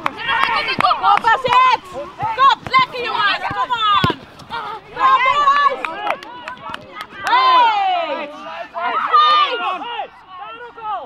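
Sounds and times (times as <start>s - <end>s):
players shouting: 0.0s - 11.0s.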